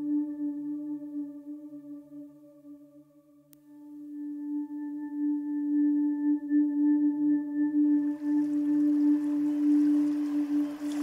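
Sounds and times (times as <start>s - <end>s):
sustained low meditation tone: 0.0s - 11.0s.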